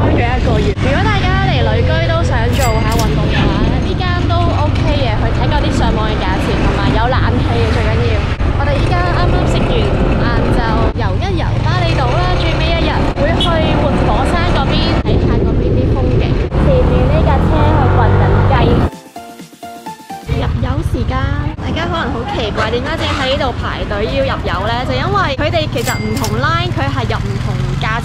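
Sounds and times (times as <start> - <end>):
wind on microphone: 0.0 - 18.9
woman talking: 0.4 - 18.9, 20.3 - 28.0
motorbike engine: 24.8 - 28.0.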